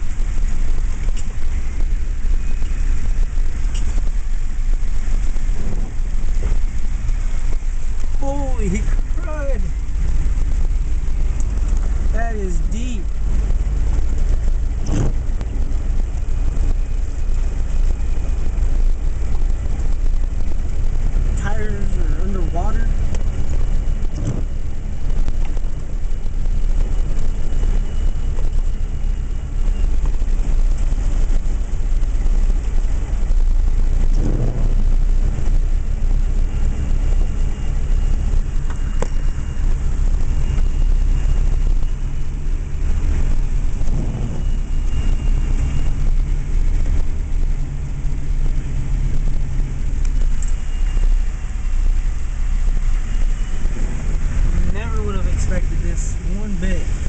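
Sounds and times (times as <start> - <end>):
engine idling hum: 0.0 - 57.0
even rushing noise: 0.0 - 57.0.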